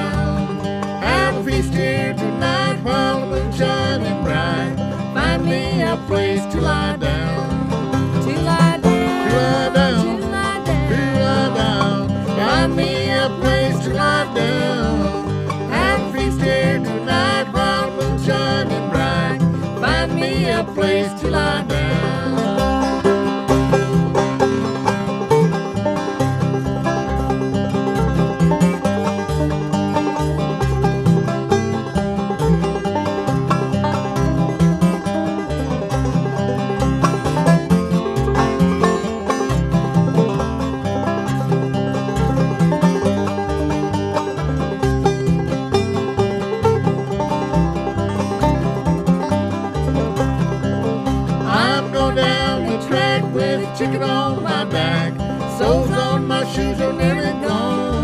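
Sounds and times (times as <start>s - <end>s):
banjo playing: 0.0s - 58.0s
flatpicked acoustic guitar: 0.0s - 58.0s.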